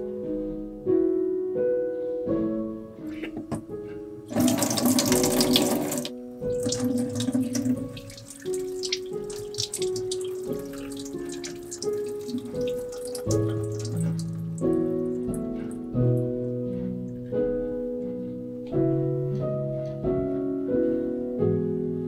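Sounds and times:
soft background music: 0:00.0 - 0:22.0
tap running into steel sink: 0:04.3 - 0:14.3
water splashing and spattering: 0:04.3 - 0:15.4.

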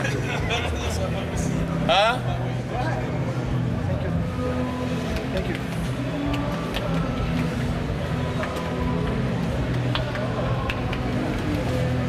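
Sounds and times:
faint music: 0:00.0 - 0:12.0
indistinct background chatter: 0:00.0 - 0:12.0.

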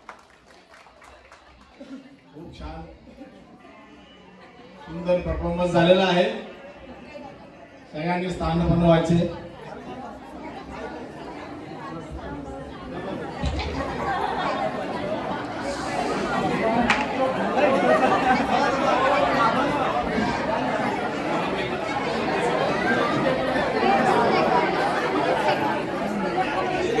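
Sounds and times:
crowd chattering: 0:00.0 - 0:27.0.

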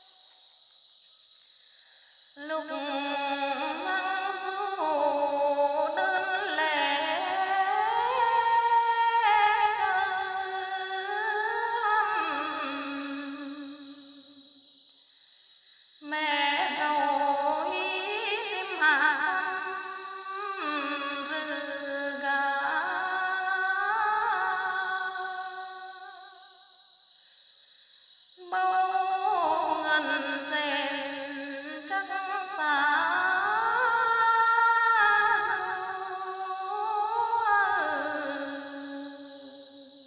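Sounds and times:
person singing long wavering notes: 0:02.4 - 0:14.0, 0:16.0 - 0:25.8.

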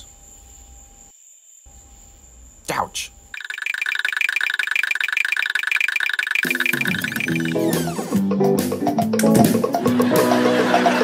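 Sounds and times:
rattling two-pitch trill: 0:03.4 - 0:08.0.

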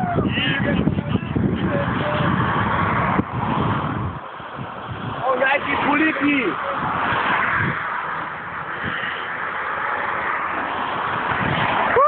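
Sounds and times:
car passing at speed: 0:00.4 - 0:12.0.

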